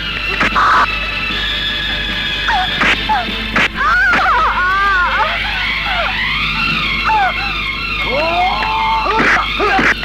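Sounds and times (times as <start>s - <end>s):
woman crying out in distress: 3.8s - 5.6s, 7.0s - 7.6s.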